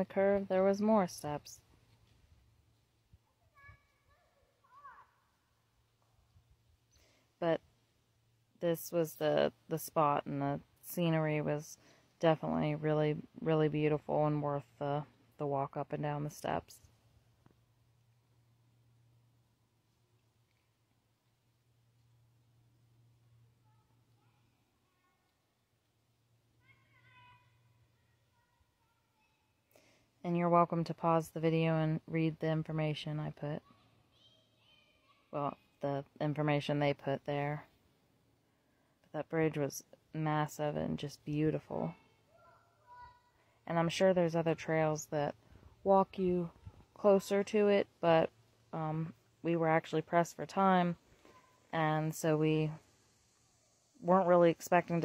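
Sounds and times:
faint high distant voice: 26.6 - 29.5.

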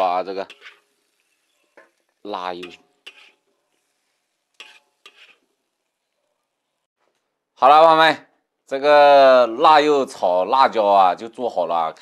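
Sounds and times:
metal spatula scraping wok: 0.0 - 6.9.

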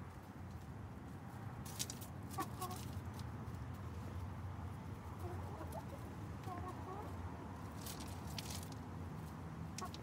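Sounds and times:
hens clucking: 2.3 - 3.0, 5.0 - 7.2, 9.8 - 10.0.

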